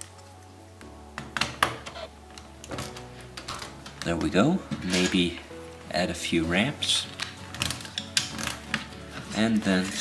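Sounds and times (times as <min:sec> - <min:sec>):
plastic bricks clicking: 0:07.1 - 0:09.4.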